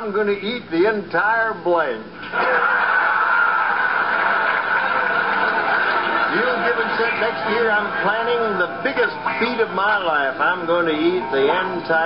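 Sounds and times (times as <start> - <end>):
audience laughing: 2.2 - 8.8.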